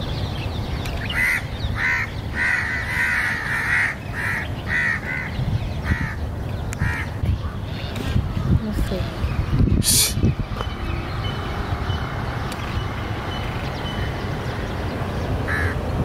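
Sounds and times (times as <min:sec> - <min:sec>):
bird calling: 0:00.0 - 0:16.0
steady low background noise: 0:00.0 - 0:16.0.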